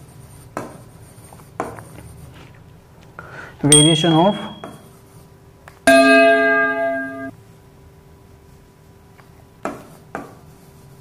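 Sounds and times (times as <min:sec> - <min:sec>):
bell chime: 0:03.7 - 0:04.8, 0:05.9 - 0:07.3.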